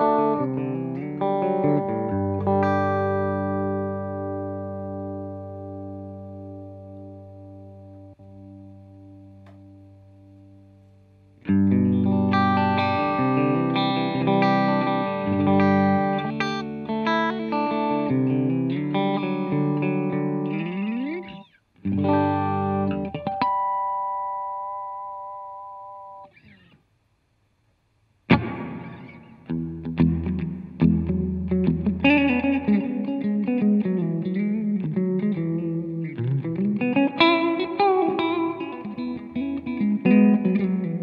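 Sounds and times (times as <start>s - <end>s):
electric guitar chords: 0.0s - 26.7s, 28.3s - 41.0s.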